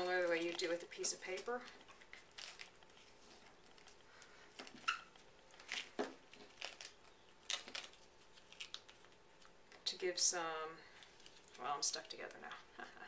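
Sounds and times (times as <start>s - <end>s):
duct tape crinkling: 0.0s - 9.9s, 10.9s - 12.5s.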